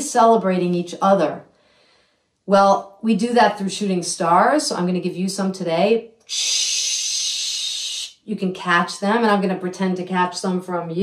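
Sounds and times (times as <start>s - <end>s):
hissing whoosh: 6.3s - 8.2s.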